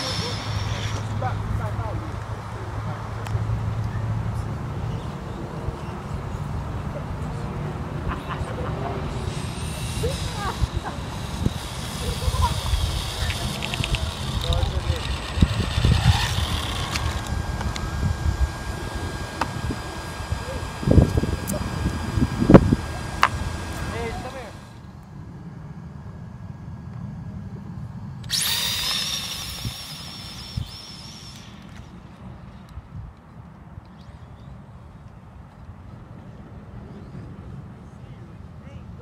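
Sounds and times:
electric motor whine: 0:00.0 - 0:05.2, 0:06.0 - 0:33.0.

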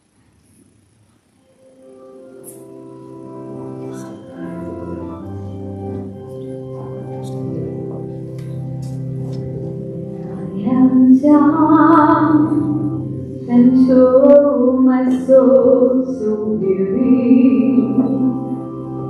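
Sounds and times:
soft organ chords: 0:01.3 - 0:19.0
woman singing: 0:10.4 - 0:18.6.

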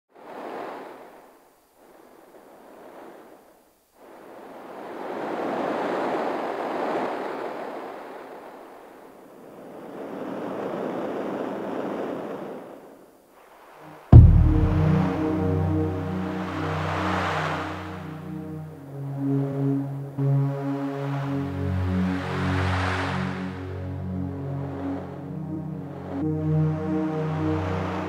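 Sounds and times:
toneless rushing noise: 0:14.1 - 0:21.5.

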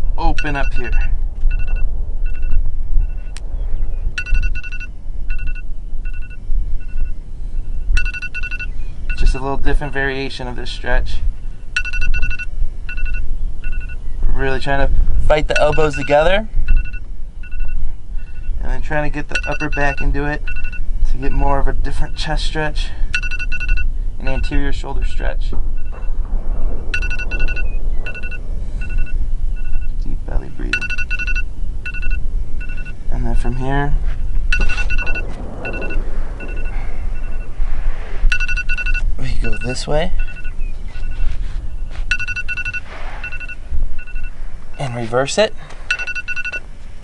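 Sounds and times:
wind rumble on microphone: 0:00.0 - 0:47.0
short electronic beeps: 0:00.2 - 0:03.4, 0:04.2 - 0:09.3, 0:11.6 - 0:14.1, 0:15.5 - 0:18.6, 0:19.3 - 0:22.2, 0:23.1 - 0:24.6, 0:26.8 - 0:30.0, 0:30.7 - 0:33.1, 0:34.1 - 0:37.6, 0:38.2 - 0:41.3, 0:42.1 - 0:44.8, 0:45.9 - 0:46.6
short two-note electronic beeps: 0:30.7 - 0:33.0, 0:38.2 - 0:41.2, 0:42.1 - 0:44.3.

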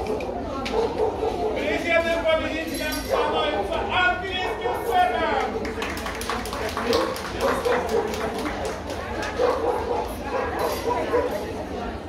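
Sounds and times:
dogs barking: 0:00.0 - 0:01.8, 0:03.0 - 0:05.8, 0:06.9 - 0:08.4, 0:09.1 - 0:11.6
people talking: 0:00.0 - 0:12.0.

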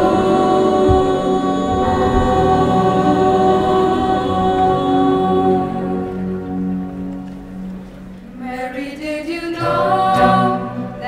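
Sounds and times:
choir of women singing: 0:00.0 - 0:07.0, 0:08.4 - 0:11.0.

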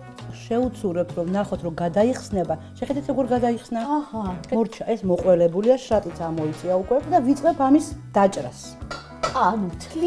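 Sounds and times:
background music: 0:00.0 - 0:10.0
knife clinking on metal pot: 0:08.8 - 0:09.5.

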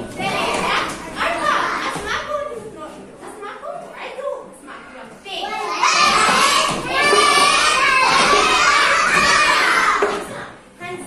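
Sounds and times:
children calling out: 0:05.4 - 0:10.2.

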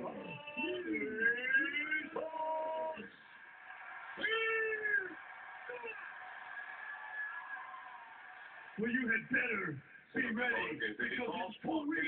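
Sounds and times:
spectator shouting: 0:03.7 - 0:08.1.

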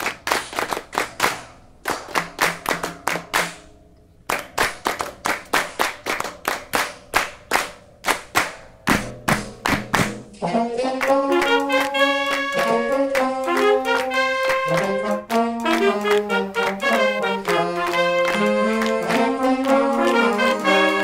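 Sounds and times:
rhythmic hand claps: 0:00.0 - 0:21.0.

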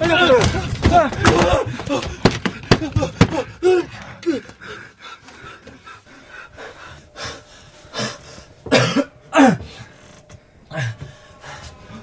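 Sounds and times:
man breathing hard: 0:01.6 - 0:08.7, 0:09.6 - 0:12.0.

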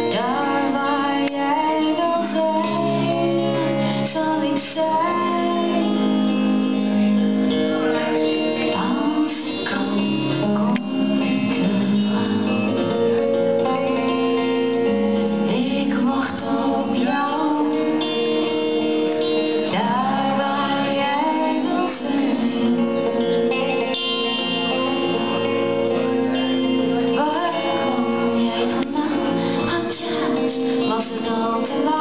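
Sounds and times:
woman singing into microphone: 0:00.0 - 0:14.5, 0:15.4 - 0:32.0
band playing: 0:05.8 - 0:32.0.

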